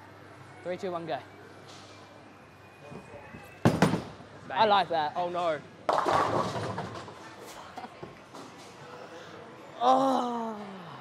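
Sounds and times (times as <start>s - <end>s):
bowling ball crashing into pins: 5.9s - 7.2s.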